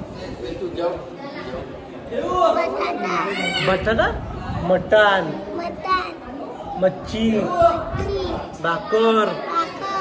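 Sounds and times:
murmur of voices: 0.0 - 10.0.

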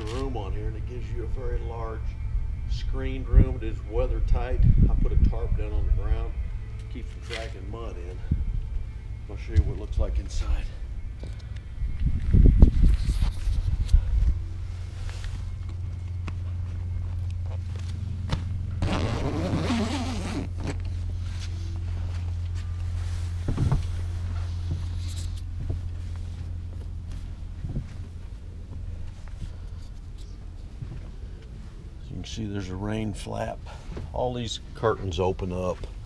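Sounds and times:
steady low hum: 0.0 - 36.0
low thumps of footsteps: 15.3 - 18.8, 21.8 - 29.7
zipper pulled on canvas: 18.8 - 20.8.

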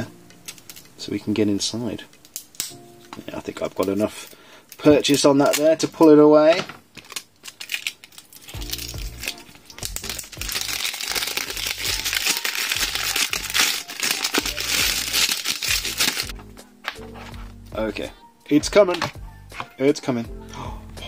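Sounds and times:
background music with low notes: 0.0 - 6.7, 8.3 - 21.0
plastic wrap crinkling: 2.0 - 17.4.

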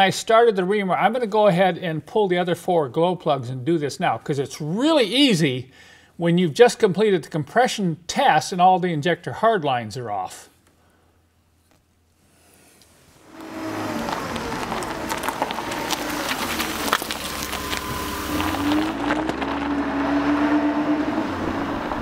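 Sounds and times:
vehicle engine running: 13.2 - 22.0.

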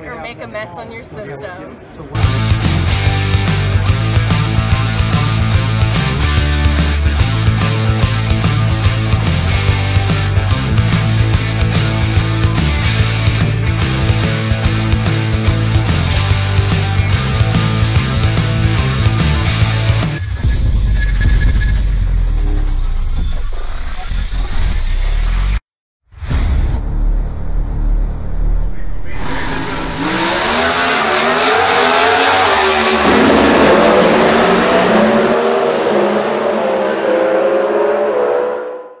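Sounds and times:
bass-heavy music: 2.2 - 25.6, 26.2 - 36.4
drag car engine revving: 2.2 - 25.6, 26.9 - 39.0.

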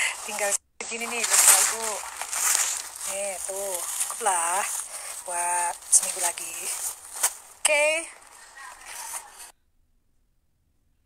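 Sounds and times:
bags rustling and scraping: 0.0 - 9.5.

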